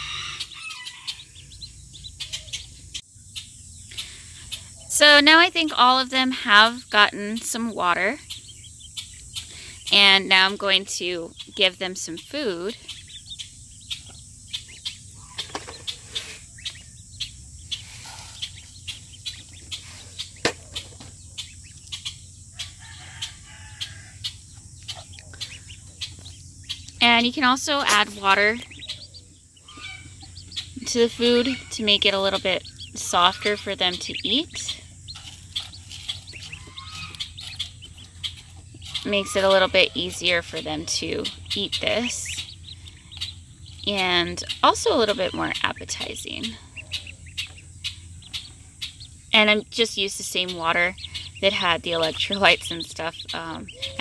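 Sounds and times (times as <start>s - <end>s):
ducklings peeping: 0.0s - 54.0s.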